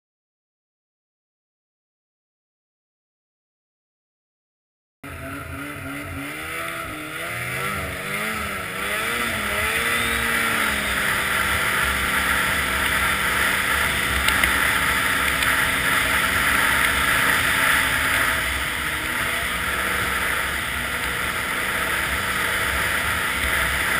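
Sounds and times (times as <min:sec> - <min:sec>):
snowmobile engine running: 0:05.0 - 0:23.9.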